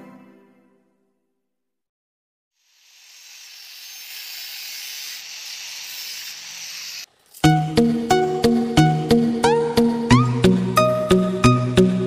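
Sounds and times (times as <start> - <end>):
hiss: 2.6 - 7.1
music with plucked notes: 7.4 - 12.0.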